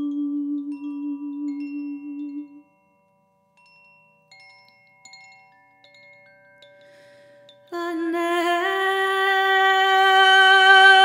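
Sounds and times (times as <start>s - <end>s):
faint chime ringing: 0.0s - 7.8s.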